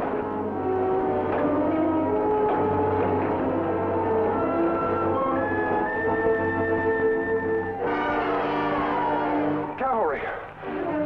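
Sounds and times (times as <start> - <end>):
orchestral music with brass: 0.0 - 11.0.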